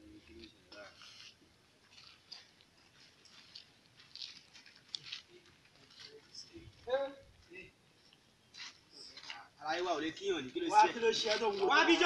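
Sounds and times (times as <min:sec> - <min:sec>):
slippers scuffing on dirt road: 0:00.3 - 0:06.6.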